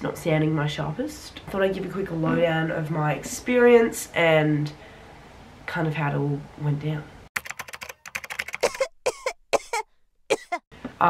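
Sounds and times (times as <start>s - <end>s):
woman coughing: 8.6s - 10.7s.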